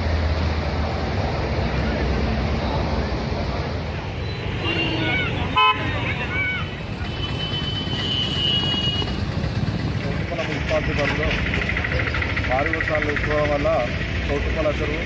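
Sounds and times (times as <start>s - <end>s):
voices calling out: 1.6s - 15.0s
vehicle horn toot: 4.6s - 6.1s, 7.0s - 9.2s.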